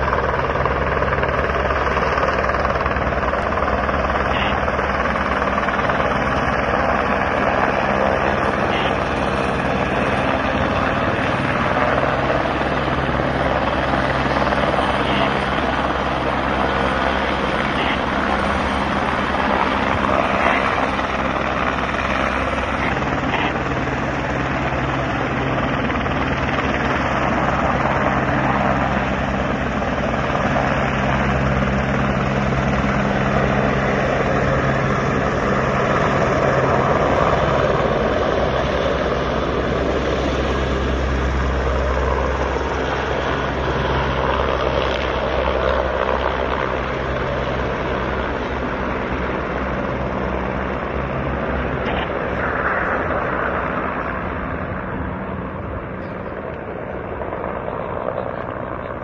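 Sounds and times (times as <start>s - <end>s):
helicopter rotor and turbine: 0.0s - 59.0s.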